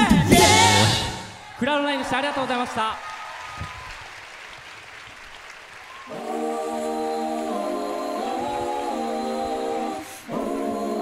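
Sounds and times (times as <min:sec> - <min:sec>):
a cappella group singing chords: 0:00.0 - 0:01.4, 0:06.1 - 0:11.0
audience applause: 0:01.5 - 0:06.7.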